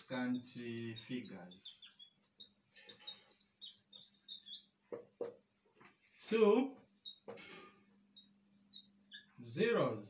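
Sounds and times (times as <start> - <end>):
marker squeaking on whiteboard: 0.0 - 6.0, 6.8 - 9.5
sharp marker taps: 1.6 - 5.5.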